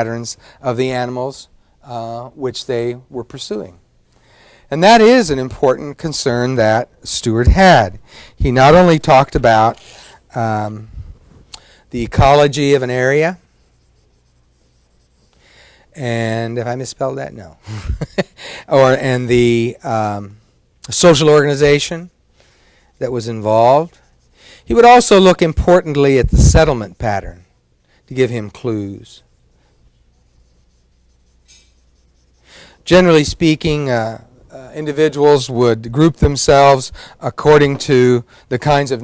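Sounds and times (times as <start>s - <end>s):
low room hum: 0.0s - 39.0s
writing scratching on a board: 13.4s - 15.4s, 22.8s - 24.4s, 29.1s - 32.5s
writing on a classroom board: 29.1s - 32.5s.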